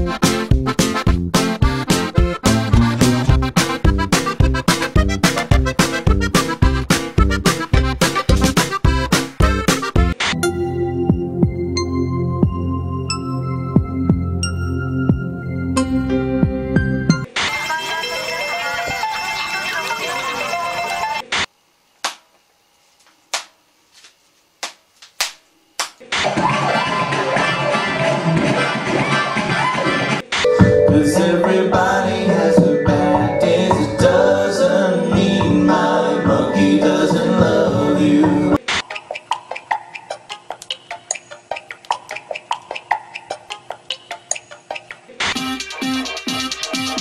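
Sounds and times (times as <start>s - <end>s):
electronic music: 0.0s - 18.0s, 30.5s - 38.6s, 44.8s - 47.0s
sharp clicks or slaps: 22.0s - 22.3s, 23.3s - 23.6s, 24.6s - 26.0s
group singing with music: 30.5s - 38.6s.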